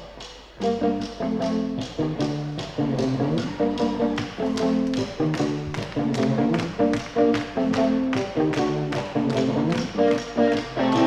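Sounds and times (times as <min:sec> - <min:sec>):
electric guitars picking notes: 0:00.0 - 0:11.0
steady tapping beat: 0:00.0 - 0:11.0.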